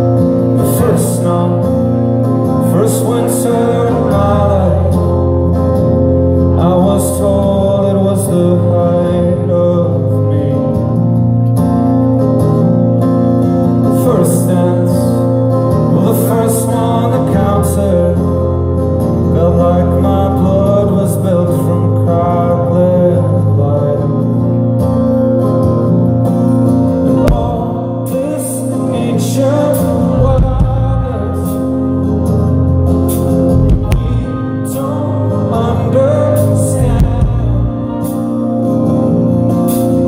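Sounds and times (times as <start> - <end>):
man singing into a microphone: 0.0 - 11.3, 13.7 - 24.8, 26.9 - 40.0
live band playing: 0.0 - 40.0
strummed acoustic guitar: 0.0 - 40.0
sustained backing music: 24.4 - 40.0.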